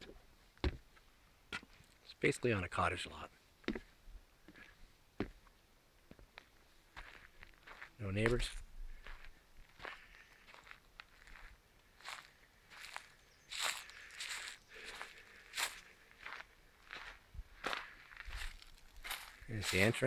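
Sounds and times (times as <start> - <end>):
footsteps on dry leaves: 7.0 - 20.0.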